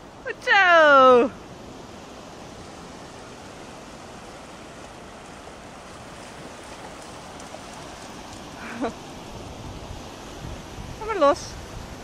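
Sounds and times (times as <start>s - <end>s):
sea surf washing: 0.0s - 12.0s.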